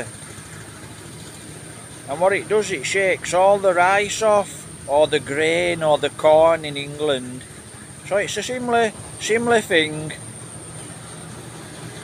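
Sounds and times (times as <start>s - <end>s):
distant thresher engine hum: 0.0s - 12.0s.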